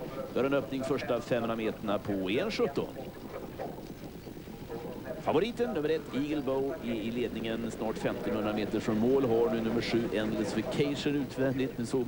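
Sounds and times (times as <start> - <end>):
low even outdoor rumble: 0.0 - 12.0.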